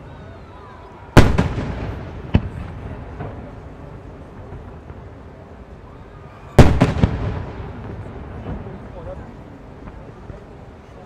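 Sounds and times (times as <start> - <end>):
rolling echo: 1.1 - 5.5, 6.5 - 10.7.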